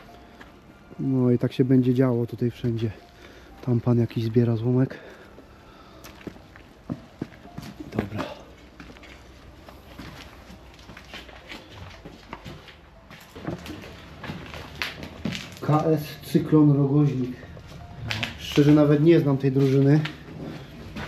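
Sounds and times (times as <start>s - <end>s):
footsteps on littered ground: 2.4s - 21.0s
debris clicking and rustling underfoot: 7.2s - 16.1s, 18.0s - 21.0s.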